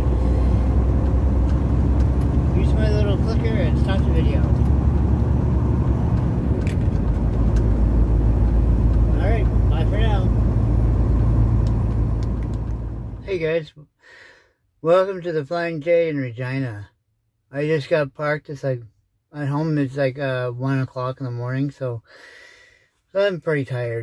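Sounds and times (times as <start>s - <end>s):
truck engine and road rumble: 0.0s - 13.5s.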